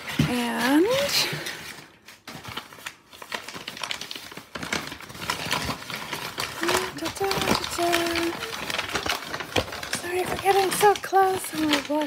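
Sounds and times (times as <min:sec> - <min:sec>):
paper wrapping crinkling: 0:00.0 - 0:12.0.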